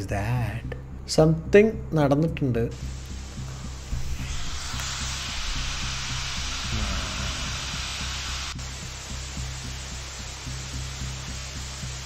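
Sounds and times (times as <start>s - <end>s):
background music with bass line: 0.0s - 12.0s
static hiss: 2.7s - 12.0s.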